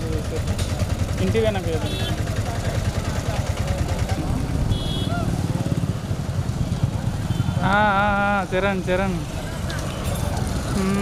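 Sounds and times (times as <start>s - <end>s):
tractor engine chugging: 0.0s - 5.4s
voices: 0.0s - 6.2s.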